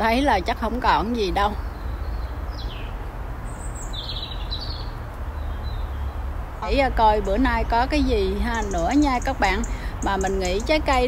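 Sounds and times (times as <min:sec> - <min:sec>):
songbird chirps: 0:00.0 - 0:11.0.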